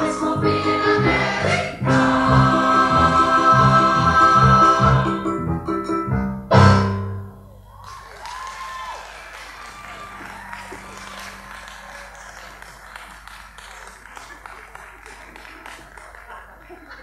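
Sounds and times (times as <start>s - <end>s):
crowd whoop: 7.4s - 12.9s
audience applauding: 7.6s - 17.0s.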